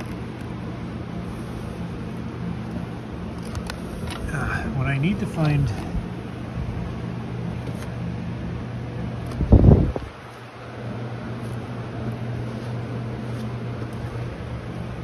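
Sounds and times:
low machine hum: 0:00.0 - 0:15.0.

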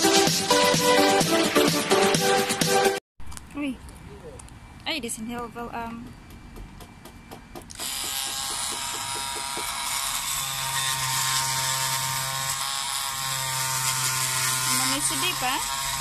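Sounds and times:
oscillating multi-tool buzzing: 0:07.7 - 0:16.0.

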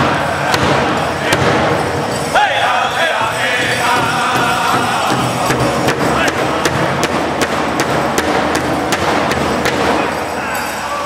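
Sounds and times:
drum struck in steady beat: 0:00.0 - 0:02.0, 0:03.2 - 0:10.1
people singing: 0:00.0 - 0:07.4.

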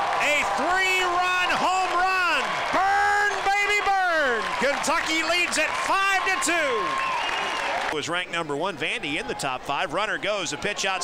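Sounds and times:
faint crowd noise: 0:00.0 - 0:11.0
male commentator shouting calls: 0:00.2 - 0:07.0.

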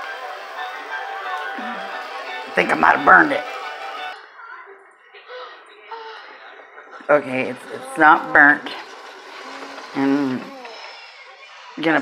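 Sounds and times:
background music: 0:00.0 - 0:04.3.

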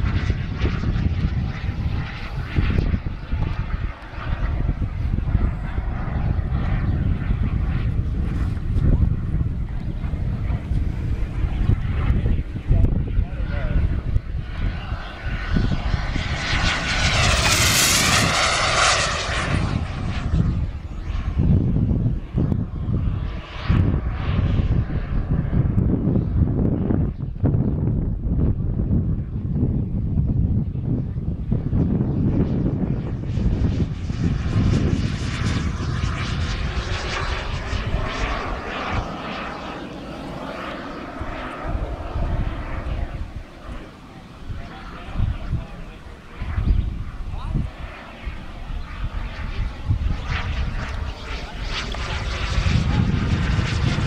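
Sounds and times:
jet turbine whine passing: 0:00.0 - 0:54.0.

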